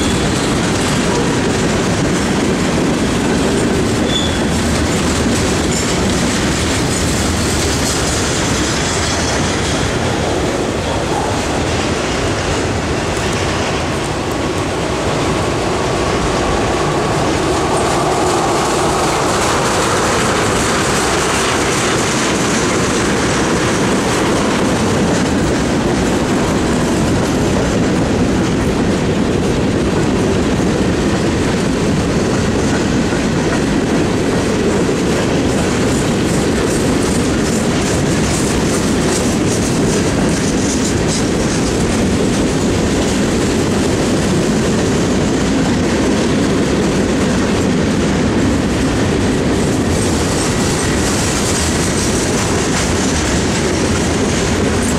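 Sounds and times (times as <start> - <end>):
train wheels rumbling on rails: 0.0 - 54.9
wheels clickety-clack over rail joints: 0.0 - 54.9.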